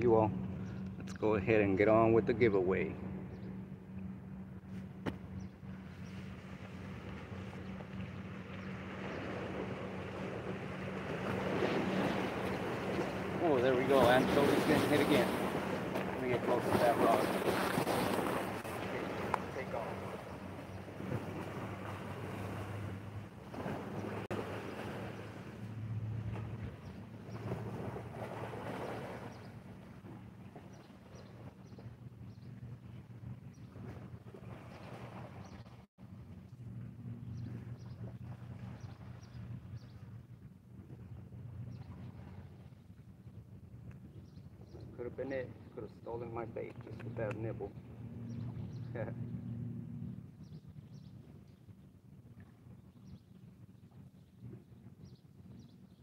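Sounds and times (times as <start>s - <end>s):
low steady drone: 0.0s - 11.3s, 25.1s - 28.0s.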